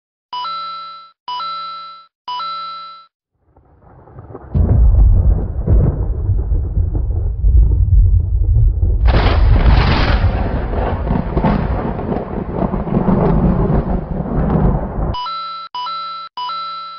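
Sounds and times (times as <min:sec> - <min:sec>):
heavy low rumbling: 0:03.5 - 0:15.1.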